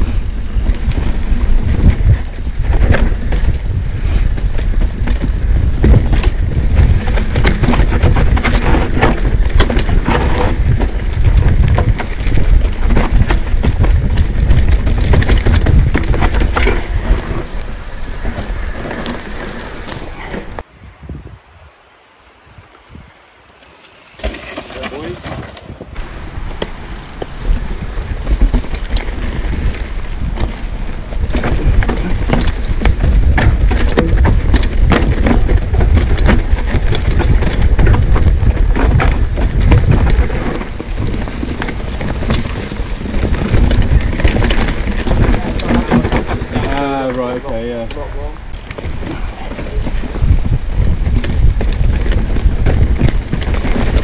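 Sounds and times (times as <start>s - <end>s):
bike rattling over rough trail: 0.0s - 20.7s, 22.4s - 54.0s
low riding rumble: 0.0s - 54.0s.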